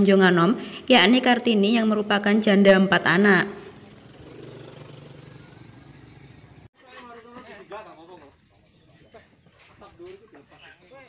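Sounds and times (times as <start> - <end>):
small motorcycle engine running: 3.5 - 6.7.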